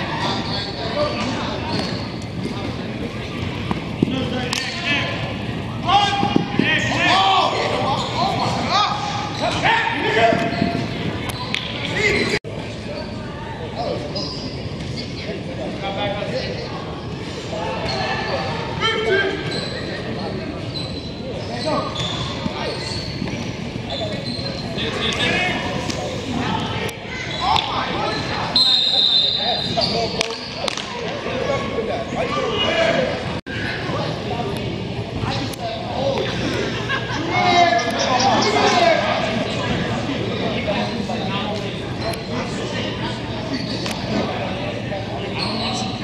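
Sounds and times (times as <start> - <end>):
indistinct voices in a hall: 0.0 - 46.0
people calling out and chatting: 0.0 - 46.0.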